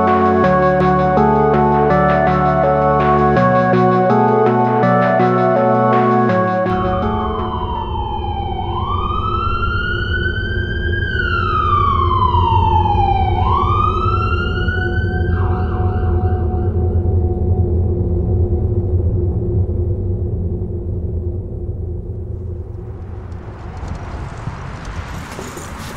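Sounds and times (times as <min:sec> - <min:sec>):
emergency vehicle siren wailing: 0:00.0 - 0:17.1
street traffic rumble: 0:22.2 - 0:25.9.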